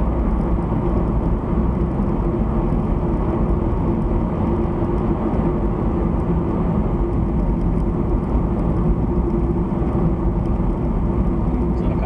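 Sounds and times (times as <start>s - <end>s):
car road and engine noise: 0.0s - 12.0s.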